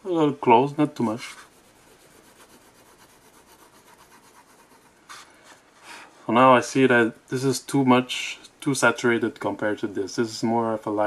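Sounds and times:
pencil scratching on paper: 1.0s - 5.6s.

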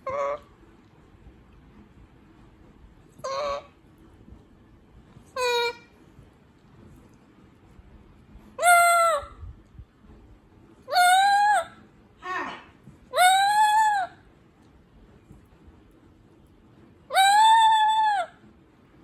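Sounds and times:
parrot squawking: 0.0s - 0.5s, 3.2s - 3.7s, 5.4s - 5.9s, 8.6s - 9.4s, 10.9s - 14.2s, 17.1s - 18.4s.

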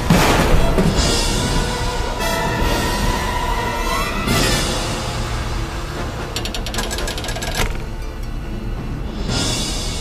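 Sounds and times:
rapid mechanical clatter: 6.2s - 8.4s.

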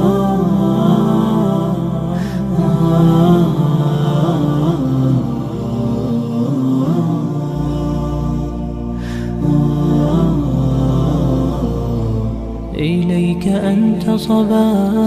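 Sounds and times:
low steady drone: 0.0s - 15.0s
wordless vocal chant: 0.0s - 15.0s.

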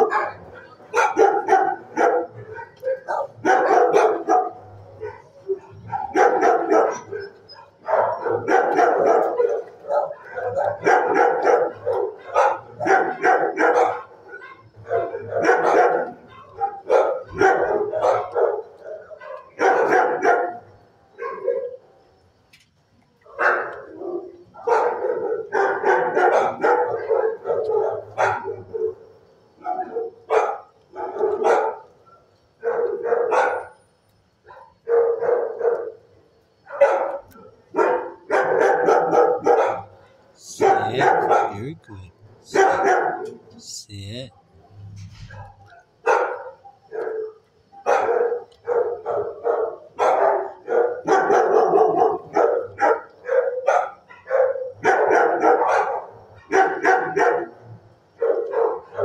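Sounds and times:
dogs barking: 0.0s - 21.9s, 23.3s - 33.8s, 34.4s - 43.6s, 44.4s - 59.0s.

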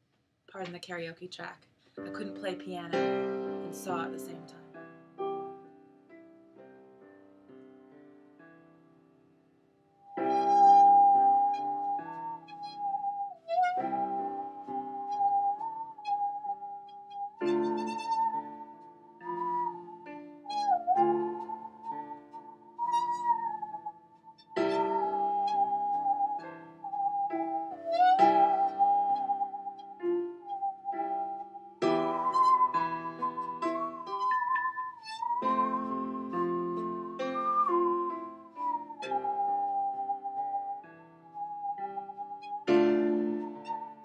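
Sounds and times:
piano backing track: 2.0s - 44.0s
bowed musical saw: 10.0s - 44.0s.

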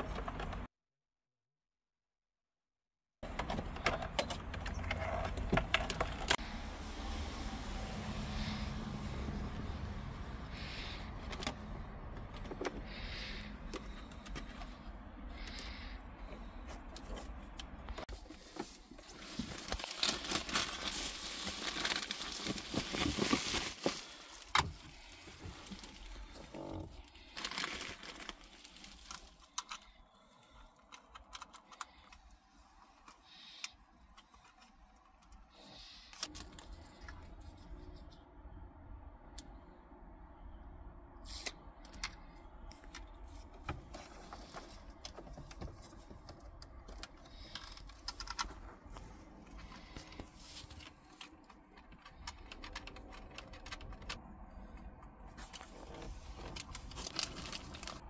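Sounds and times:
plastic bags crinkling: 18.2s - 30.3s, 55.4s - 58.0s.

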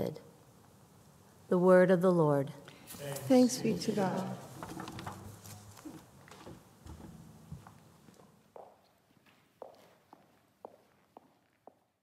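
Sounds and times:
footsteps on hard floor: 4.7s - 11.6s.

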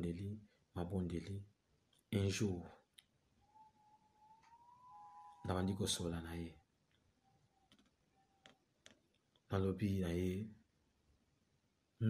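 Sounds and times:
faint thin rising tone: 3.4s - 5.5s.

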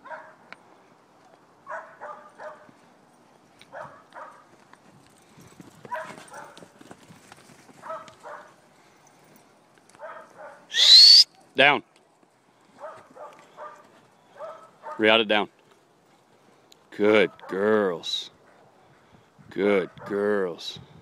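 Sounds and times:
dog barking: 0.0s - 0.4s, 1.6s - 2.7s, 3.7s - 4.5s, 5.9s - 6.6s, 7.8s - 8.6s, 10.0s - 10.7s, 12.8s - 13.8s, 14.4s - 15.1s.

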